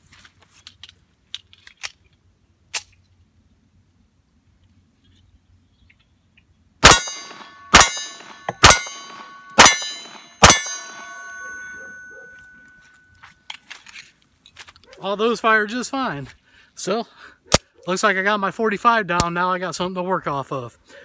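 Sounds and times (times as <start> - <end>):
pistol shots: 6.8 - 12.0
steel target ringing: 6.8 - 13.2.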